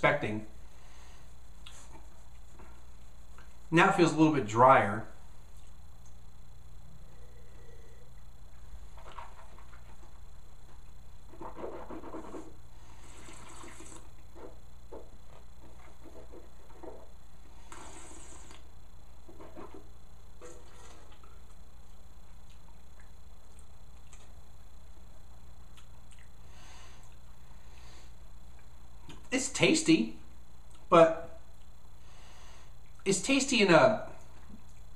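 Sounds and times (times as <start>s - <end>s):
low hum: 0.0s - 33.1s
sipping and slurping wine: 13.0s - 14.1s.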